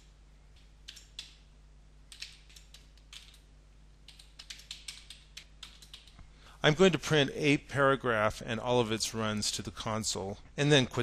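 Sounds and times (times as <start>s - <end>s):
keyboard typing: 0.8s - 1.4s, 2.1s - 6.2s.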